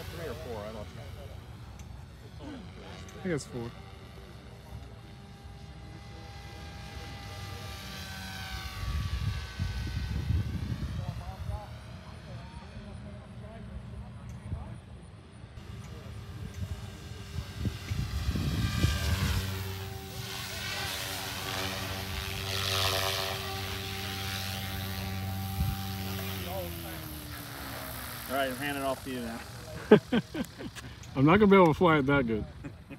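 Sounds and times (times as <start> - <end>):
rc helicopter rotor whine: 0.0 - 32.9.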